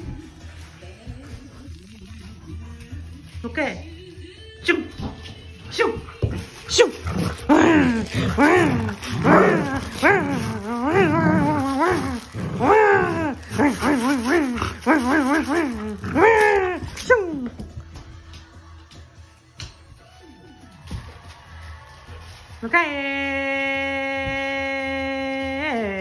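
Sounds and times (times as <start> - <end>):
dog grumbling and whining: 6.8 - 17.5.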